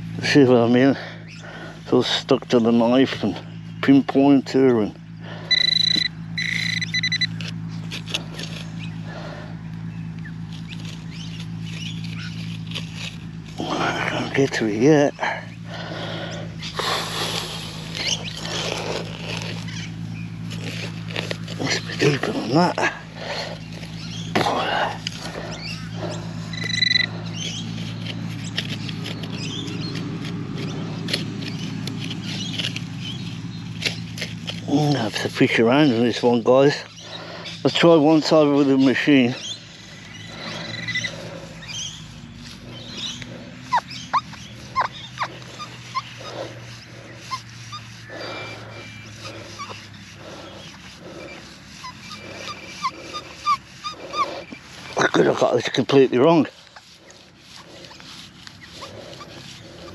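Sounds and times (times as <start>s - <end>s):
scraping and clicking in wet soil: 0.0s - 59.9s
steady low hum: 0.0s - 59.9s
pinpointer beep: 5.5s - 7.4s, 26.5s - 27.1s
metal detector buzzing alert tone: 5.5s - 7.5s, 26.5s - 27.1s.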